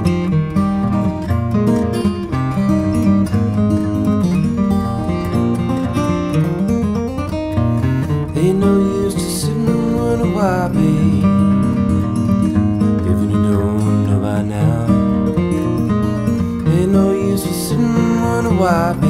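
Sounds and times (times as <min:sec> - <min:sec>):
acoustic guitar fingerpicked: 0:00.0 - 0:19.0
man singing: 0:08.2 - 0:19.0.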